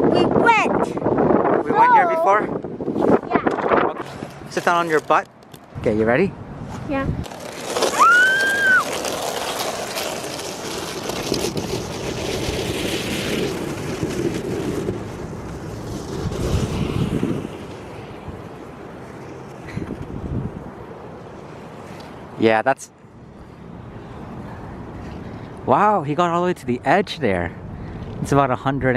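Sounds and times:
wind rushing over microphone: 0:00.0 - 0:07.4, 0:10.2 - 0:21.4, 0:26.6 - 0:28.9.

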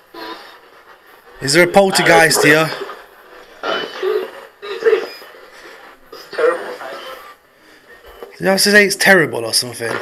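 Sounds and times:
radio hiss: 0:00.0 - 0:10.0
chopped radio voice fragments: 0:01.3 - 0:07.4.

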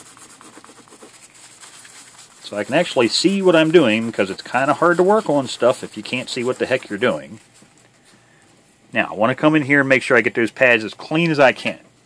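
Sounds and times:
paper wipe rubbing circuit board: 0:00.0 - 0:08.2.

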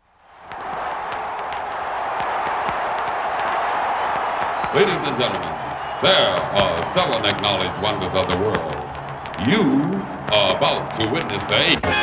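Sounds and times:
crowd applauding and cheering: 0:00.0 - 0:12.0.

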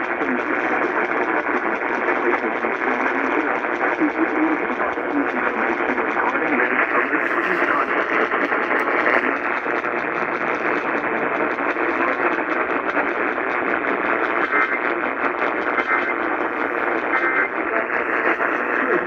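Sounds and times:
faint radio voice: 0:00.0 - 0:19.0
radio static hiss: 0:00.0 - 0:19.0.

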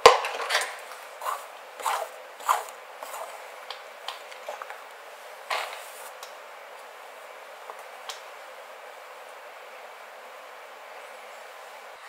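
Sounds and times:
comb strokes through hair: 0:01.0 - 0:03.6, 0:05.6 - 0:06.2.

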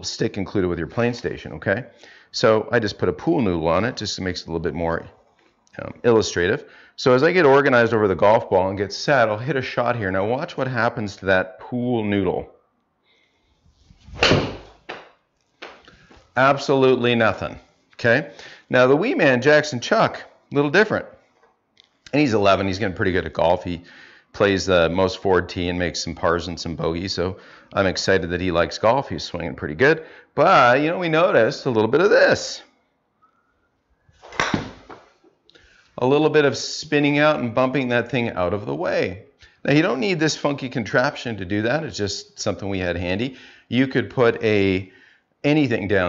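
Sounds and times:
golf club striking ball: 0:14.2 - 0:15.1, 0:34.3 - 0:35.0.

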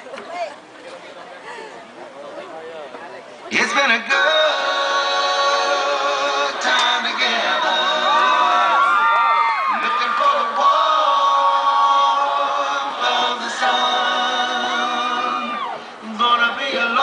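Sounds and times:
large choir singing unaccompanied: 0:03.8 - 0:17.0.

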